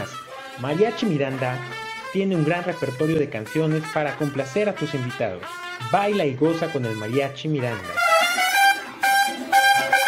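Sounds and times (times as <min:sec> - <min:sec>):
mariachi band with trumpets: 0:00.0 - 0:10.0.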